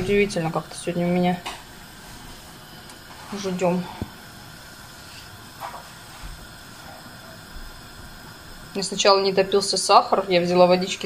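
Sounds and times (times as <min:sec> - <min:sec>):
syrup hissing and bubbling in pan: 0:00.0 - 0:11.0.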